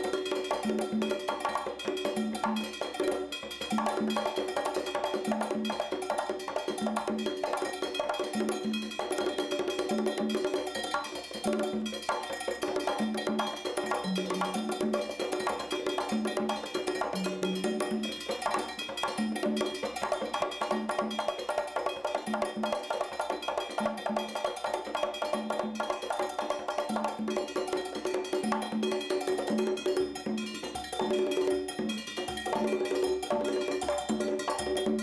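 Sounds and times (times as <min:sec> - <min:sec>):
bright metallic percussion: 0:00.0 - 0:35.0
congas played by hand: 0:00.0 - 0:35.0.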